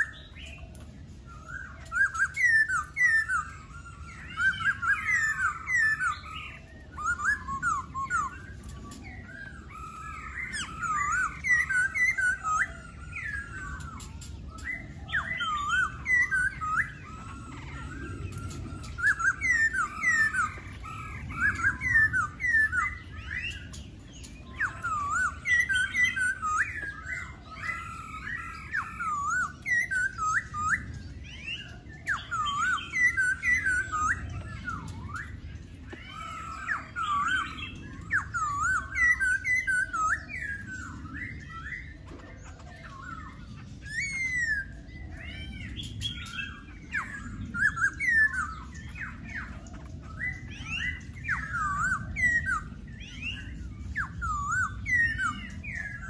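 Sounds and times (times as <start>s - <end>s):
bird singing whistled notes: 0.0s - 56.0s.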